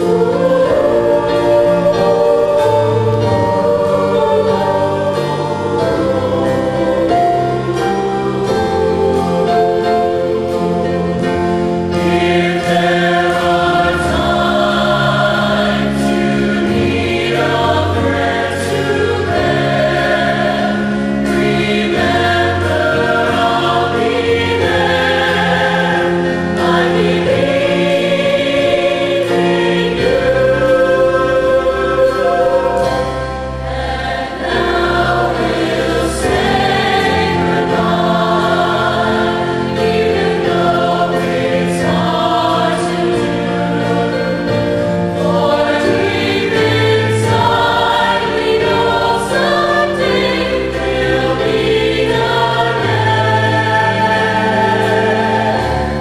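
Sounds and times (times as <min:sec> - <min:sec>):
mixed choir singing in harmony: 0:00.0 - 0:56.0.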